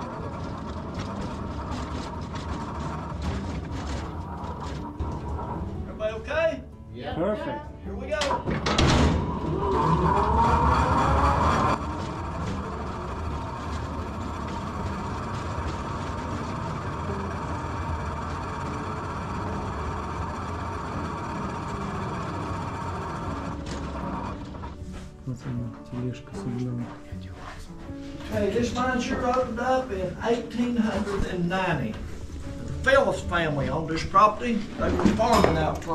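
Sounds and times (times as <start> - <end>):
rail car running on track: 0.0 - 6.0, 8.3 - 26.1
rail car wheels squealing: 9.1 - 24.8.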